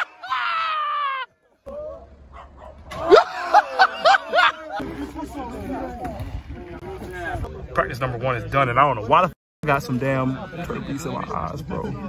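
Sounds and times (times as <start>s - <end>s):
men yelping and laughing: 0.0s - 2.2s, 2.9s - 5.5s.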